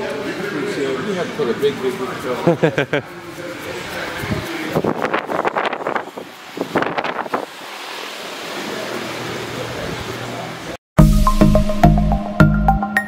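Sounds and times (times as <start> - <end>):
muffled voices: 0.0 - 5.4.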